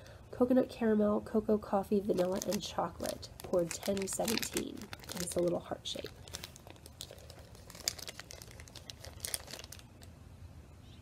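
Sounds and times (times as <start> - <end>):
plastic bag crinkling: 1.9 - 10.1.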